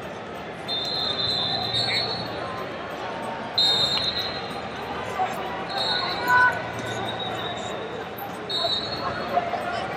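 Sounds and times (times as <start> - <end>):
crowd hubbub: 0.0 - 9.9
referee whistle blasts: 0.7 - 2.4, 3.6 - 4.5, 5.7 - 7.8, 8.5 - 9.2.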